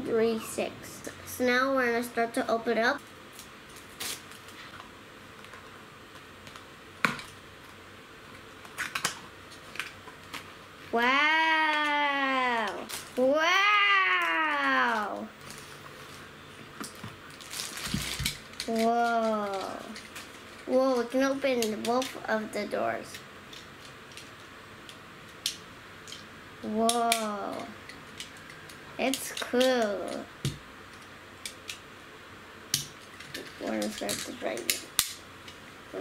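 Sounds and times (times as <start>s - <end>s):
child saying wow: 10.9s - 15.3s, 26.6s - 27.8s
plastic bag rustling: 11.8s - 21.2s.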